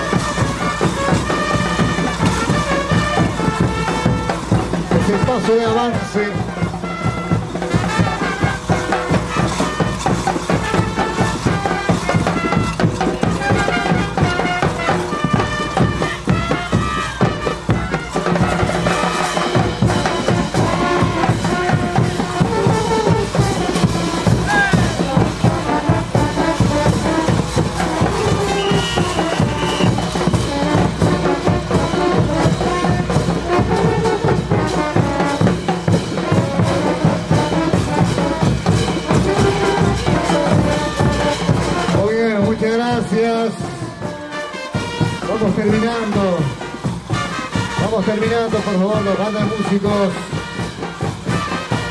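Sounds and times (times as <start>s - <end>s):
bass drums beating: 0.0s - 51.9s
brass band playing: 0.0s - 51.9s.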